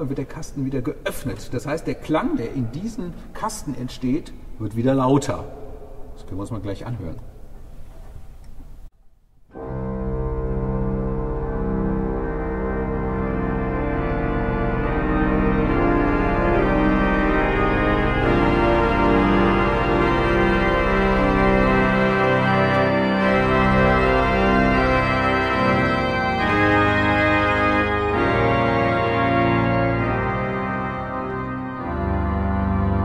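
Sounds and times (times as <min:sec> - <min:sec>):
pipe organ chords: 0:09.5 - 0:33.0.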